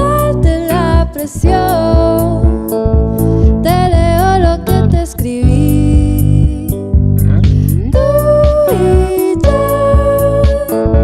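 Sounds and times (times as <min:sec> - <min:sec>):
woman singing: 0:00.0 - 0:02.8, 0:03.5 - 0:07.0, 0:07.8 - 0:11.0
pop band music: 0:00.0 - 0:11.0.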